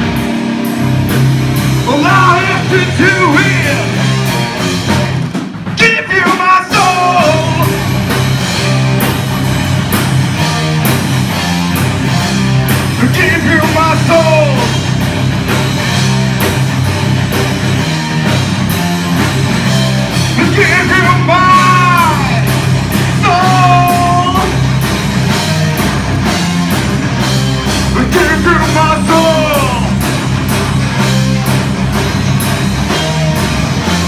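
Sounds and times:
drum and cymbal strikes: 0:00.0 - 0:34.0
live rock band playing loudly: 0:00.0 - 0:34.0.

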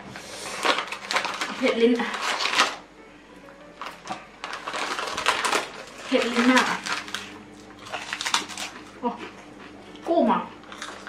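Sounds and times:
rice cakes being crunched: 0:00.4 - 0:02.9, 0:03.8 - 0:09.0.

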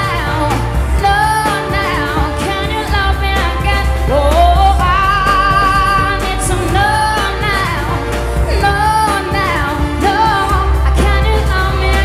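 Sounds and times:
instrumental backing with bass: 0:00.0 - 0:12.0
woman singing pop song: 0:00.0 - 0:12.0.

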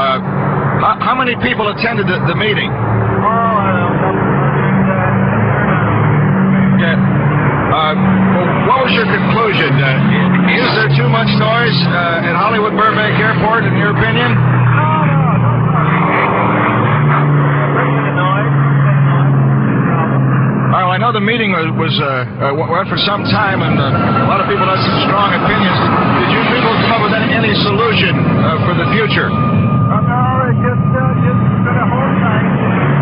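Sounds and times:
man talking: 0:00.0 - 0:00.2, 0:00.8 - 0:06.0, 0:06.6 - 0:07.1, 0:07.7 - 0:16.3, 0:17.4 - 0:32.6
aircraft engine noise: 0:00.0 - 0:33.0.

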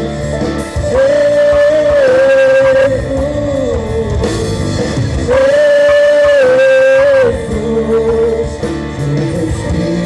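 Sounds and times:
live rock band music: 0:00.0 - 0:10.0.

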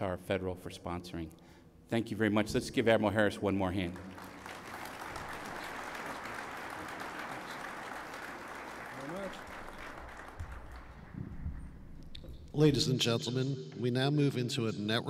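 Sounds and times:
audience applauding: 0:03.8 - 0:11.8.

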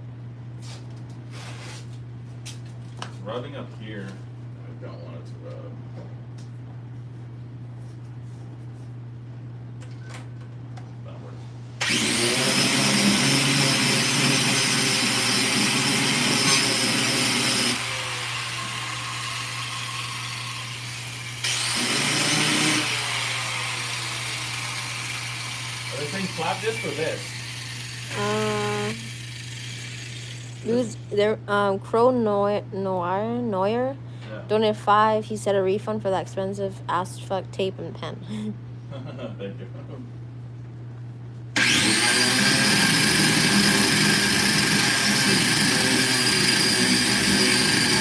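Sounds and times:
power grinder whining: 0:11.8 - 0:30.8, 0:41.6 - 0:48.0.

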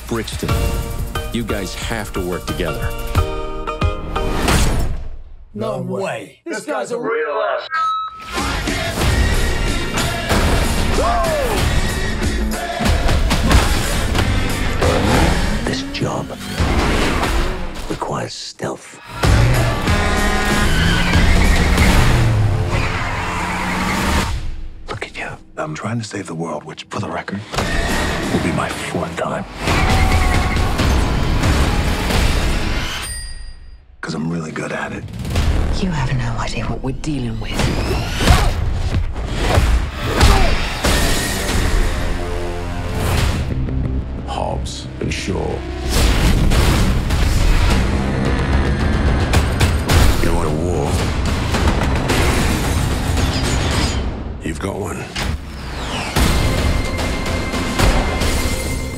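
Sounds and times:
loud trailer music: 0:00.0 - 0:05.5, 0:08.2 - 0:18.2, 0:19.0 - 0:25.6, 0:27.4 - 0:33.0, 0:34.8 - 0:58.9
car engine revving hard: 0:13.7 - 0:17.8, 0:19.2 - 0:24.3
tyre squeal: 0:19.6 - 0:24.3.

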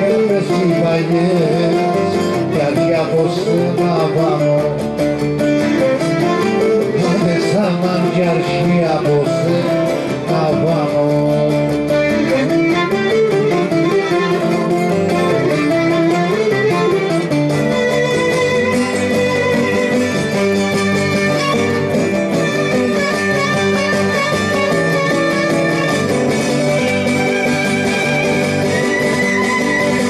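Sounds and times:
bowed string melody: 0:00.0 - 0:30.0
plucked strings: 0:00.0 - 0:30.0.

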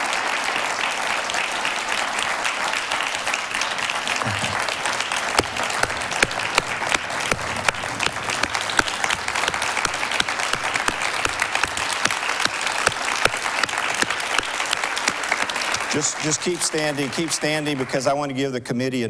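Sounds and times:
large audience applauding: 0:00.0 - 0:18.4
loud single claps: 0:01.6 - 0:17.3.

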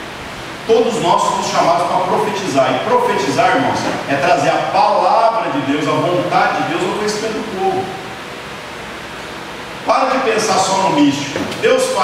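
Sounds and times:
steady background hiss: 0:00.0 - 0:12.0
man's voice: 0:09.9 - 0:12.0.

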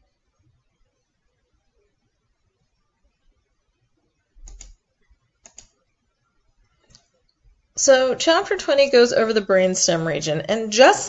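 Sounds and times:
computer mouse clicks: 0:04.4 - 0:04.8, 0:05.4 - 0:05.8, 0:06.6 - 0:07.5
person speaking: 0:07.8 - 0:11.0.

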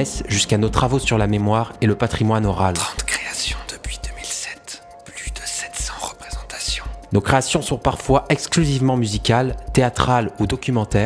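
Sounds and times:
breathy whispering: 0:02.7 - 0:07.1.

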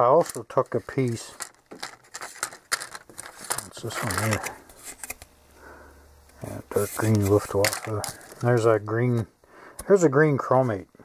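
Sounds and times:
paper cards rustling and tapping: 0:00.0 - 0:05.3, 0:06.4 - 0:08.8.

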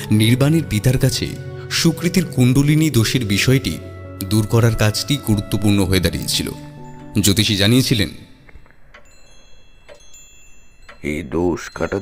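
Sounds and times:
soft high-pitched chimes: 0:05.6 - 0:12.0.

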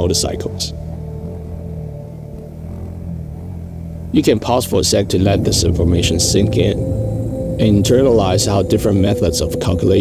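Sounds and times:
motorcycle engine running: 0:00.0 - 0:09.0
faint music: 0:00.0 - 0:10.0.

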